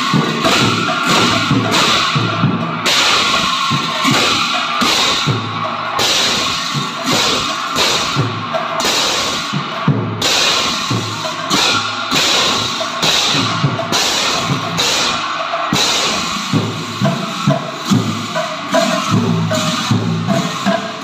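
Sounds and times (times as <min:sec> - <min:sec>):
cymbals crashing and ringing: 0:00.0 - 0:21.0.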